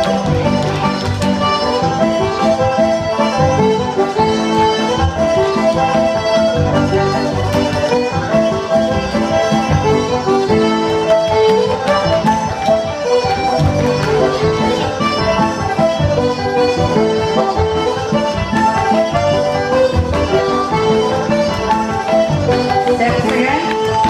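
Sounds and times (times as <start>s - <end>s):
traditional dance band music: 0.0s - 24.0s.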